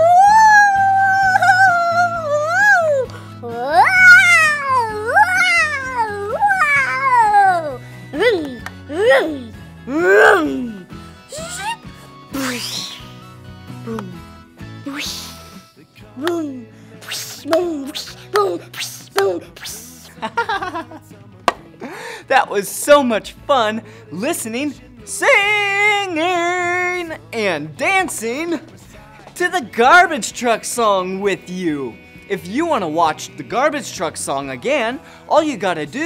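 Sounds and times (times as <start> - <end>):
man making whining calls: 0.0 - 13.2, 13.9 - 15.5
wavering vocal sound: 0.0 - 13.2, 13.8 - 21.2.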